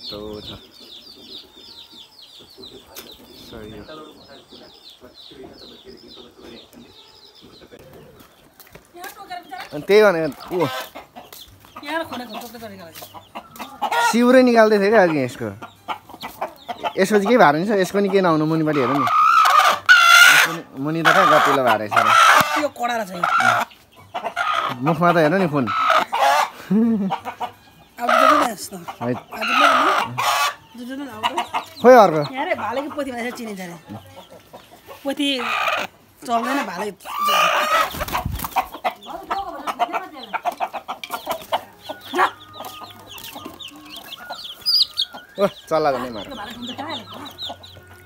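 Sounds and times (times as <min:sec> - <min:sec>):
hen clucking: 0:00.0 - 0:48.0
chicken calling: 0:09.3 - 0:48.0.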